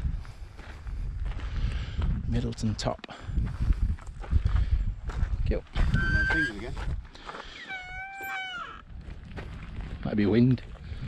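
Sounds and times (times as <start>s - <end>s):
wind rumble on microphone: 0.0s - 7.2s, 7.8s - 11.0s
gate hinge squealing: 5.9s - 6.7s, 7.6s - 8.8s.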